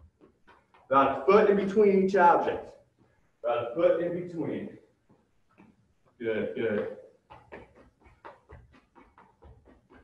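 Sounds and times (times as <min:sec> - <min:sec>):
quick footsteps on gym floor: 0:00.0 - 0:10.0.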